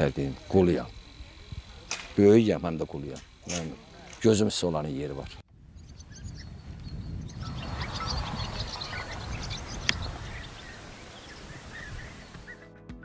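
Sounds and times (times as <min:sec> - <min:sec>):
small birds chirping: 0:00.0 - 0:12.6
sharp click: 0:01.9 - 0:02.2, 0:03.1 - 0:04.3.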